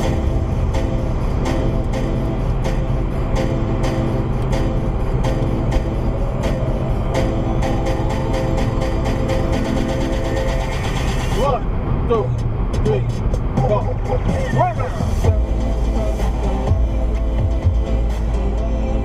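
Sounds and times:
background music with steady beat: 0:00.0 - 0:19.0
car driving rumble: 0:00.0 - 0:19.0.

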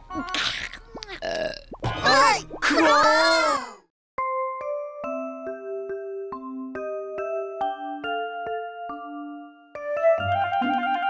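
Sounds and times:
cartoon burp: 0:00.3 - 0:02.1
light background music: 0:04.2 - 0:11.0.

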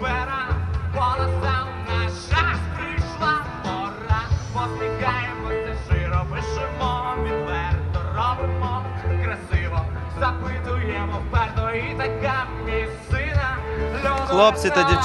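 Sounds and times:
rock band playing: 0:00.0 - 0:15.0.

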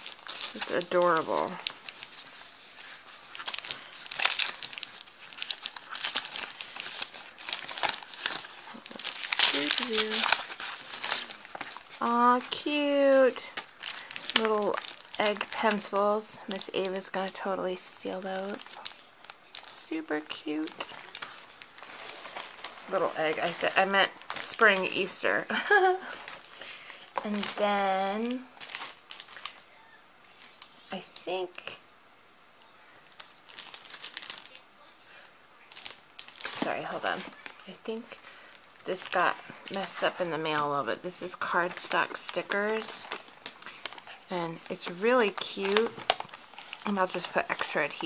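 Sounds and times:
paper and cellophane crinkling: 0:00.0 - 0:31.8, 0:32.6 - 0:48.0.

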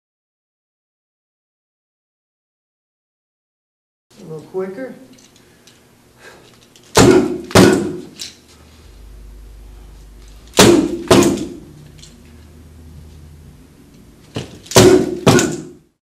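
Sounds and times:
nunchaku smacking strike pads: 0:06.9 - 0:08.3, 0:10.4 - 0:11.8, 0:14.3 - 0:16.0.

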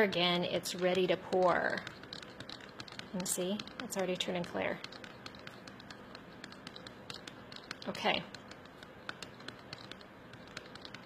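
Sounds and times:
stir stick clicking in plastic cup: 0:00.7 - 0:11.0.

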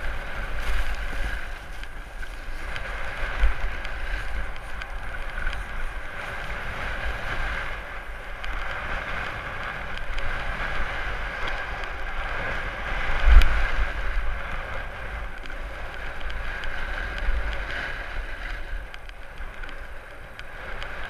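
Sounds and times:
snowboard scraping over snow: 0:00.0 - 0:21.0
wind buffeting microphone: 0:00.0 - 0:21.0.

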